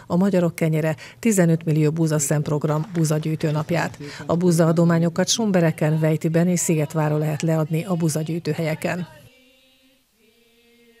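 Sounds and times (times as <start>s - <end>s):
women's choir singing held notes: 5.5s - 11.0s.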